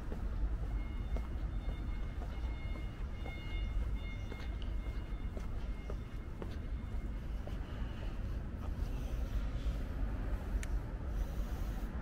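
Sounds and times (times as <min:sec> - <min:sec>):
faint footsteps on pavement: 0:00.0 - 0:12.0
low city rumble: 0:00.0 - 0:12.0.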